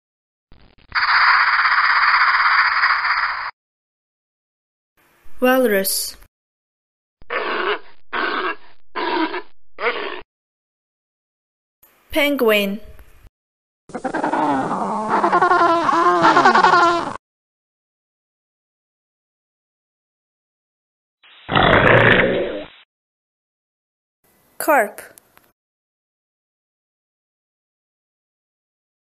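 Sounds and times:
penguins crying: 0:13.9 - 0:17.2.

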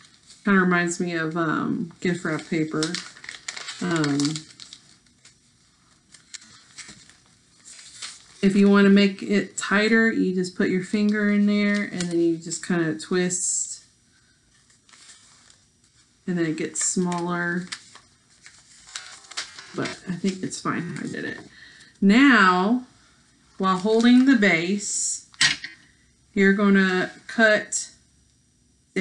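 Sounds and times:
paper rustling and crinkling: 0:00.0 - 0:01.0, 0:01.7 - 0:09.0, 0:14.5 - 0:21.6, 0:23.6 - 0:24.5
soft crackles: 0:00.0 - 0:09.0, 0:13.5 - 0:22.0, 0:22.9 - 0:24.6.

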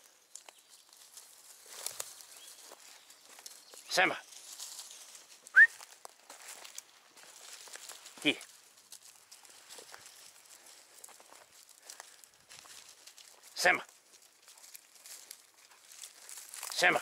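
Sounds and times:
footsteps on dry leaves: 0:00.0 - 0:17.0
rising whistle: 0:05.5 - 0:05.8.

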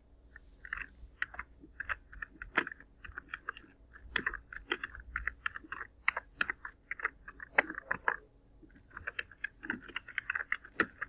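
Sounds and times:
computer keyboard typing: 0:00.7 - 0:11.0.

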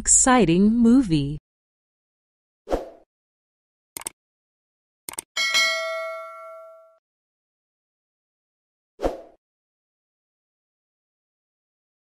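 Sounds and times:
double mouse click: 0:04.0 - 0:04.2
notification bell ding: 0:05.4 - 0:07.0.

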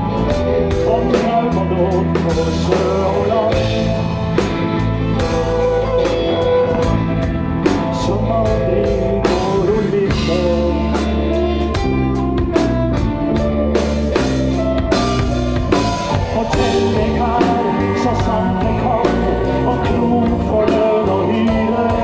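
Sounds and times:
electric guitar: 0:00.0 - 0:22.0
keyboard: 0:00.0 - 0:22.0
steady drum beat: 0:00.0 - 0:22.0
fiddle melody: 0:03.3 - 0:08.8.

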